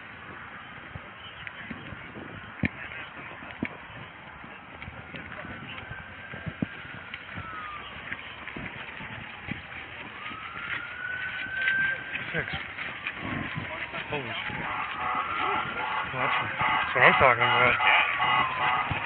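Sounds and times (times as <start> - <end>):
footsteps: 0.2 - 19.0
voices: 0.6 - 19.0
emergency siren wailing: 1.7 - 19.0.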